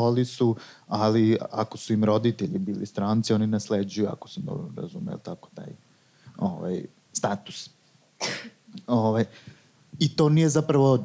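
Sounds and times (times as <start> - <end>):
man clearing his throat: 8.2 - 8.6.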